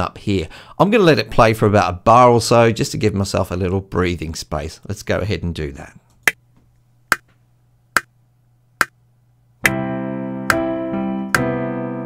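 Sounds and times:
piano chord: 9.6 - 12.0.

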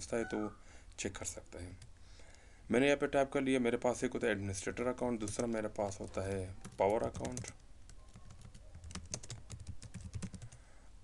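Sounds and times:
typing on computer keyboard: 5.2 - 10.6.

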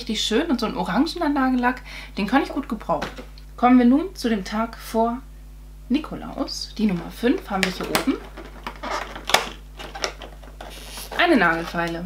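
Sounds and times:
cardboard flap snapping open: 7.6 - 11.9.

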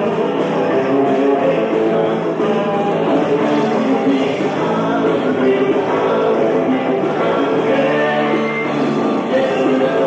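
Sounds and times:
rock band playing live: 0.0 - 10.0
voices singing: 0.0 - 10.0.

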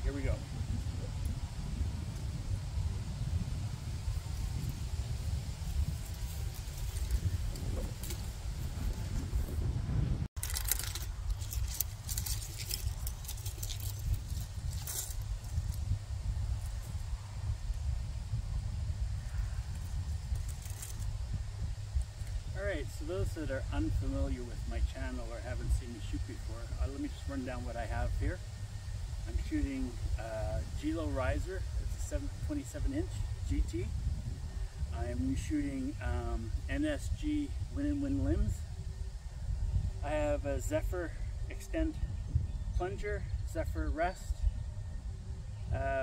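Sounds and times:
wind buffeting microphone: 0.0 - 46.0
scattered crackles: 10.4 - 15.8, 19.7 - 21.1.

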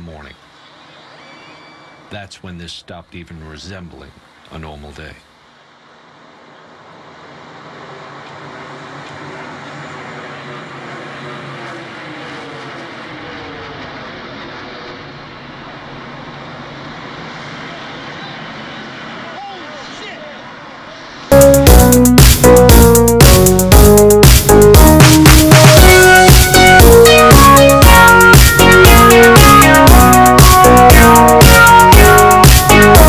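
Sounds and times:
jet engines of airliner passing: 5.5 - 21.3
electronic dance music: 21.3 - 33.0.

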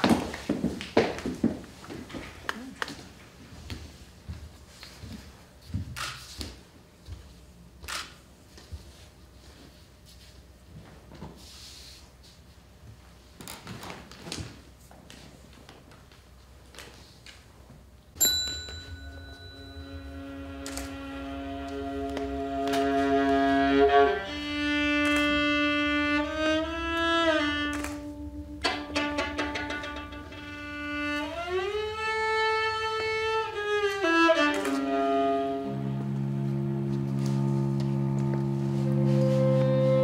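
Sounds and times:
bowed strings: 18.9 - 40.0
flute and clarinet: 34.6 - 40.0.

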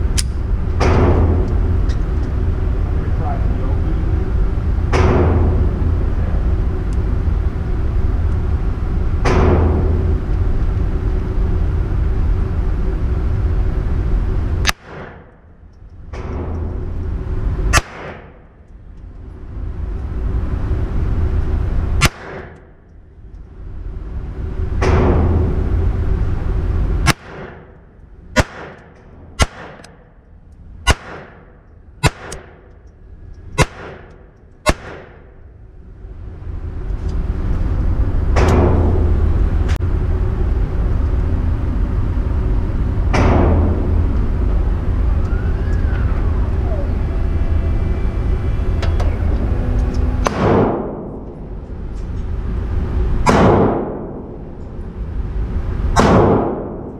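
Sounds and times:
low rumble: 0.0 - 56.9
pistol shots: 14.6 - 15.3, 17.7 - 18.4, 22.0 - 22.6, 27.0 - 27.8, 28.4 - 30.0, 30.8 - 32.6, 33.6 - 35.2.

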